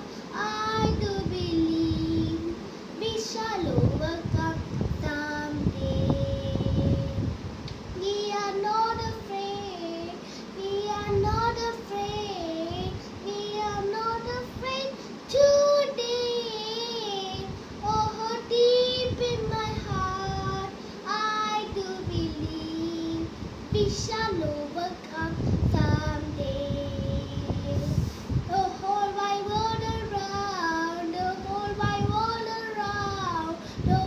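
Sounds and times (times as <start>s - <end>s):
boy singing: 0.0s - 7.3s, 8.0s - 34.0s.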